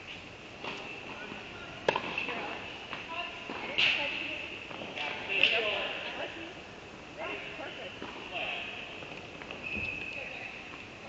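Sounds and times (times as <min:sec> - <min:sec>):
tennis ball hit: 0:01.8 - 0:02.4.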